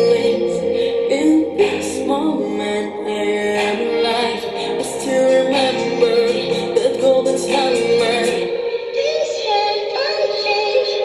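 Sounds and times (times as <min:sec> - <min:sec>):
girl singing: 0:00.0 - 0:11.0
pop backing track: 0:00.0 - 0:11.0.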